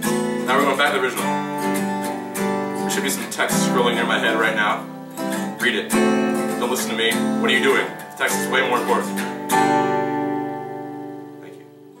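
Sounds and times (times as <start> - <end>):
acoustic guitar chord strum: 0.0 - 12.0.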